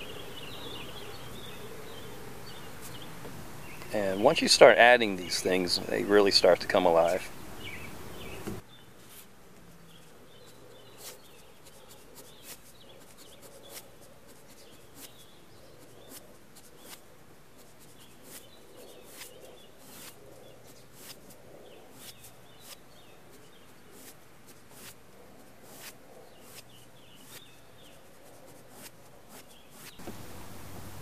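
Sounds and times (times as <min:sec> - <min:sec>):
faint bird chirps: 0:09.7 - 0:17.0, 0:17.6 - 0:24.2
pen scratching on paper: 0:09.9 - 0:30.0.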